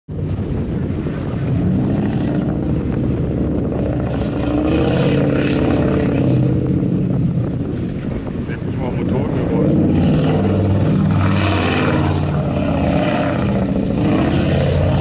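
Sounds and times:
boat engines droning: 0:00.1 - 0:15.0
water churning under hull: 0:00.1 - 0:15.0.

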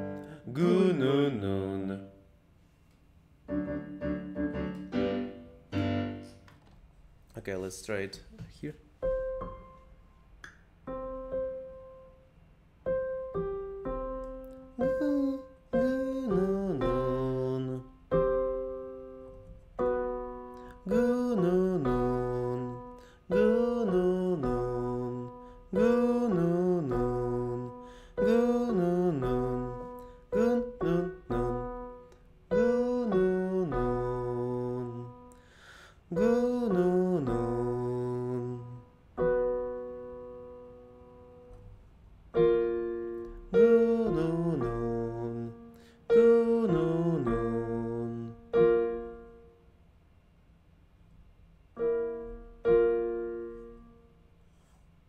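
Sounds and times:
piano accompaniment: 0:00.0 - 0:02.1, 0:03.4 - 0:06.5, 0:08.9 - 0:49.6, 0:51.7 - 0:54.2.

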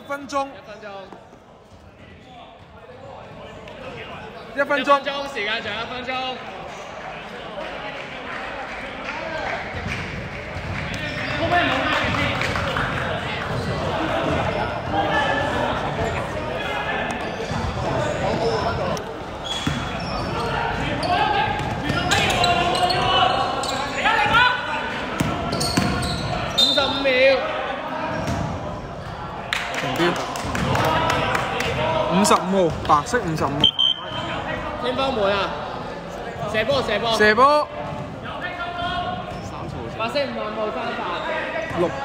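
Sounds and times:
voices echoing in a hall: 0:00.0 - 0:42.0.

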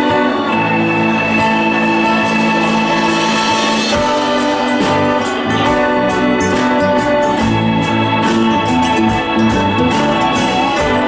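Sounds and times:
country band playing live: 0:00.0 - 0:11.0
drums with steady beat: 0:00.0 - 0:11.0
organ-like keyboard chords: 0:00.0 - 0:11.0.

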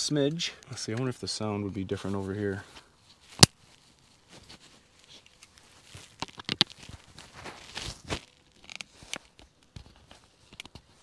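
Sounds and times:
faint rustling: 0:01.7 - 0:11.0.

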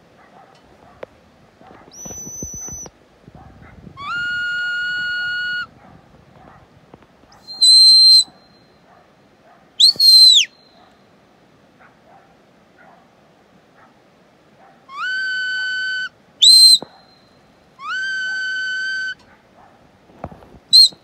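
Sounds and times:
whistled commands to a dog: 0:01.9 - 0:02.9, 0:20.7 - 0:21.0.

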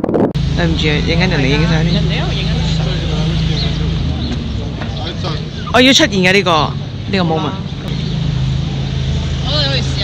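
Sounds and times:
low engine hum: 0:00.1 - 0:10.0.

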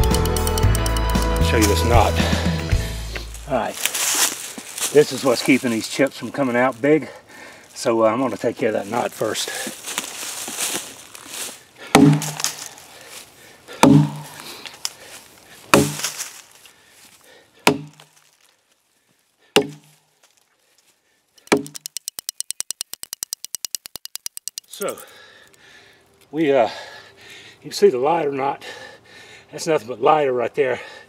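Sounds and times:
fast run of clicks: 0:00.0 - 0:01.4, 0:21.4 - 0:25.0
axe chopping wood: 0:11.9 - 0:12.8, 0:13.8 - 0:14.5, 0:15.7 - 0:16.2, 0:17.7 - 0:18.1, 0:19.6 - 0:20.0, 0:21.5 - 0:21.9.

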